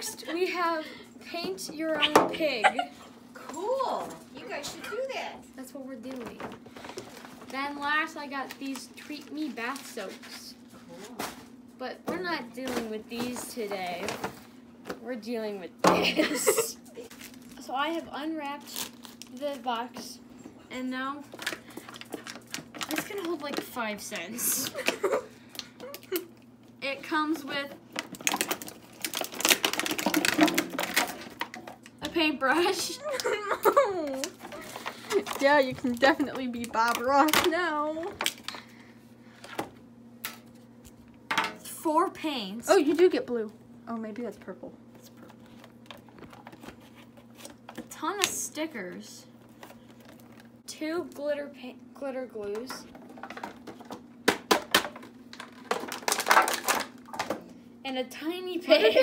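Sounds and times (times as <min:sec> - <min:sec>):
plastic packaging crinkling: 0:17.0 - 0:17.8, 0:18.5 - 0:19.9, 0:21.2 - 0:26.3, 0:27.7 - 0:31.9, 0:33.0 - 0:38.8, 0:45.0 - 0:47.9, 0:49.4 - 0:50.6, 0:54.6 - 0:57.4
small items clicking and knocking: 0:27.9 - 0:32.0, 0:52.6 - 0:57.4.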